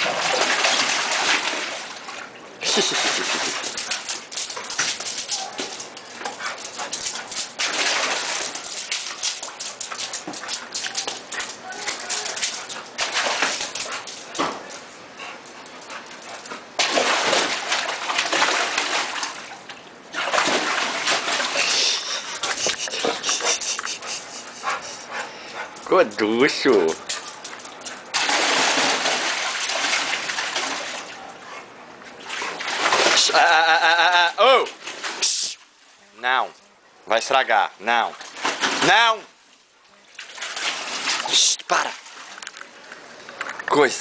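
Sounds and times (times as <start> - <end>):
water splashing and dripping: 0.0 - 24.2, 26.1 - 31.2, 32.2 - 35.7, 38.0 - 42.6.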